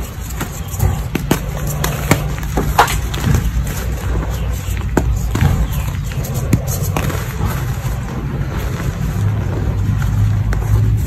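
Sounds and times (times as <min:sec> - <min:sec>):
chalk crunching and crumbling: 0:00.0 - 0:11.0
low background rumble: 0:00.0 - 0:11.0.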